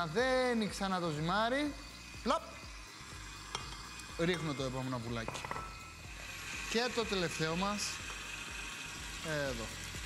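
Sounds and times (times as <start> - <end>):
stand mixer running: 0.0 - 10.0.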